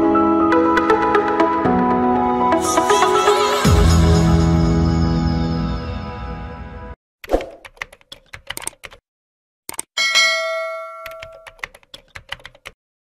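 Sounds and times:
bell ding: 10.0s - 11.6s.

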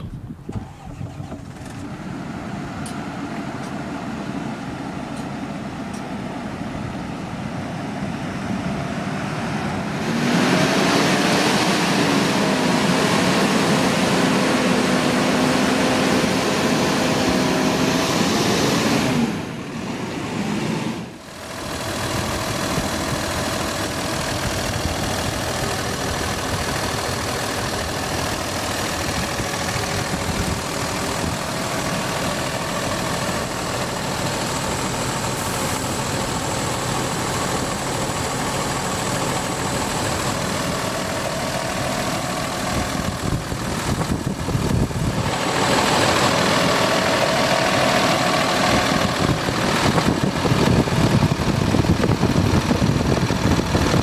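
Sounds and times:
diesel bus engine idling: 0.0s - 54.0s.

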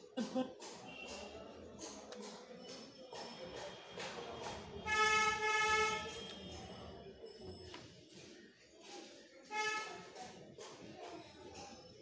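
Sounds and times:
vehicle horn honk: 4.8s - 6.3s.

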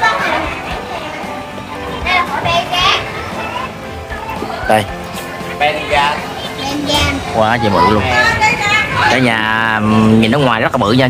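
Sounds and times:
children calling: 0.0s - 10.6s
crowd talking: 0.0s - 11.0s.

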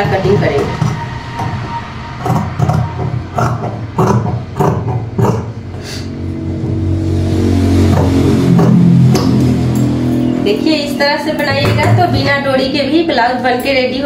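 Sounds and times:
low droning hum: 0.0s - 14.0s.

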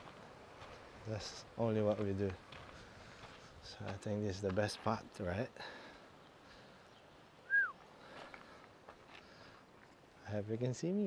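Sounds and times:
faint background noise: 0.0s - 11.0s
whistled bird call: 7.4s - 7.8s.

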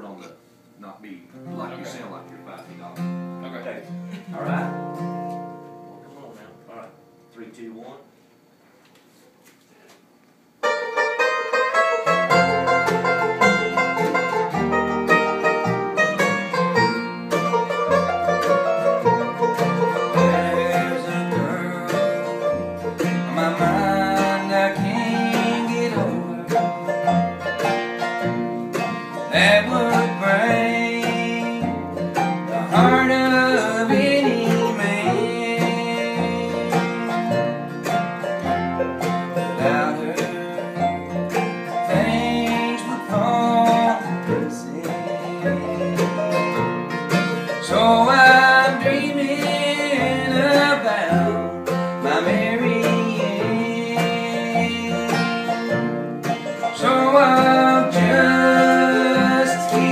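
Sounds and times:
upright bass: 0.0s - 7.0s, 10.7s - 59.9s
acoustic guitar picking: 0.0s - 7.7s, 10.6s - 59.9s
mandolin picking: 1.4s - 7.1s, 10.6s - 59.9s.

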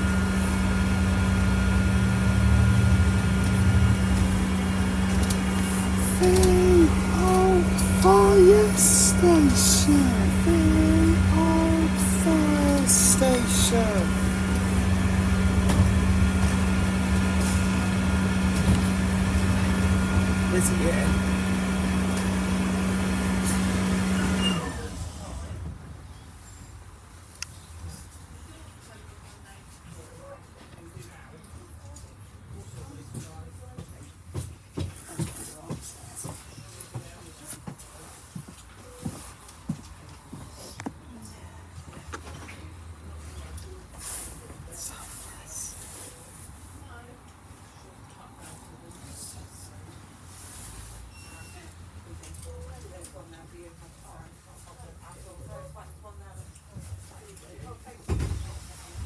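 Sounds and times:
bus engine running: 0.0s - 25.7s.

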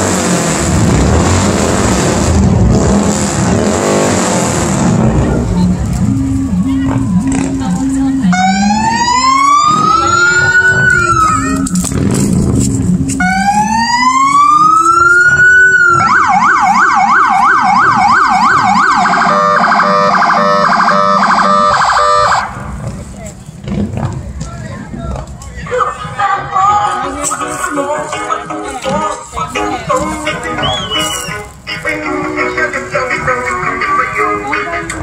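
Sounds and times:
electronic police siren: 6.0s - 11.8s, 13.2s - 22.6s.

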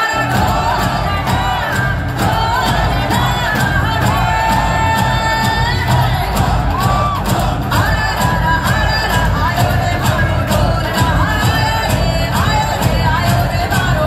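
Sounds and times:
crowd cheering: 0.0s - 14.0s
song with sung melody and beat: 0.0s - 14.0s.

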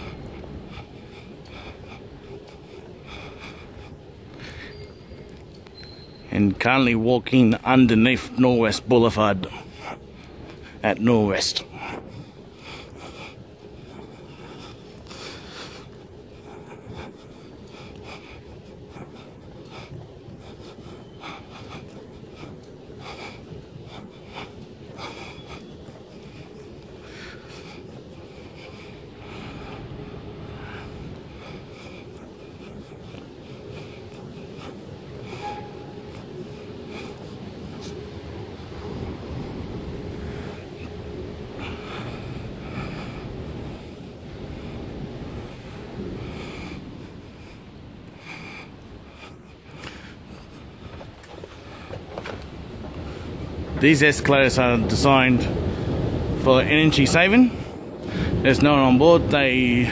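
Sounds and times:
footsteps on tiled floor: 0.0s - 6.6s, 7.9s - 54.6s
steady low hum: 0.0s - 59.9s.

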